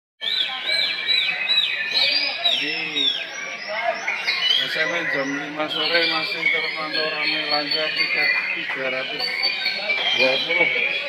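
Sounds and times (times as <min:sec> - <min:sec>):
songbirds chorus: 0:00.2 - 0:11.0.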